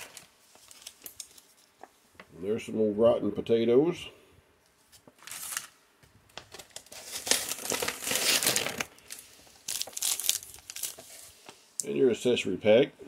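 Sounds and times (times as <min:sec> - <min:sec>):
plastic and foil packaging crinkling: 0:00.0 - 0:01.9, 0:05.0 - 0:11.5.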